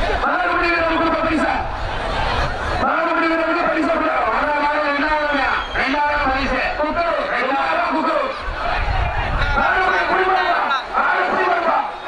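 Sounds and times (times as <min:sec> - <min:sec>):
man commentating: 0:00.0 - 0:01.8, 0:02.8 - 0:12.0.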